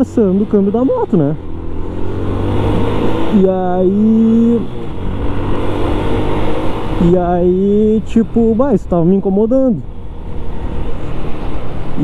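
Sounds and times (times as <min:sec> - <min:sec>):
motorcycle wind and road noise: 0:00.0 - 0:12.0.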